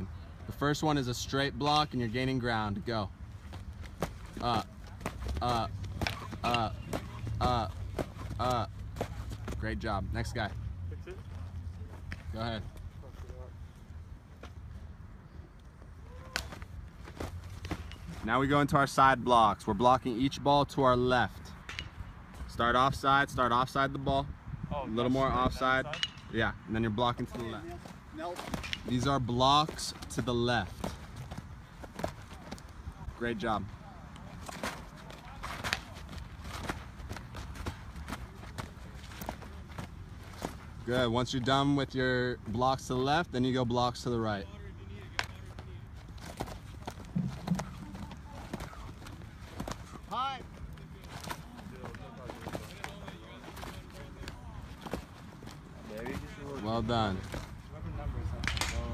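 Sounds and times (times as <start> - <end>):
feet and gear knocking on dirt: 46.2 - 50.2.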